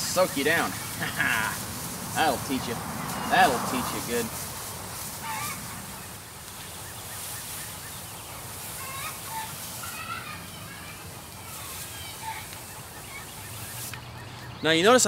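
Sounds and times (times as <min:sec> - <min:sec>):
garden sprayer hissing: 0:00.0 - 0:14.1
birds calling: 0:00.0 - 0:15.0.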